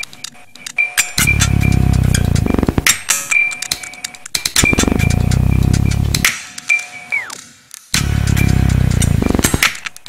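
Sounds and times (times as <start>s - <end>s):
sharp electronic clicks and ticks: 0.2s - 6.4s, 8.0s - 9.8s
low buzzing drone: 1.2s - 2.9s, 4.6s - 6.3s, 8.0s - 9.6s.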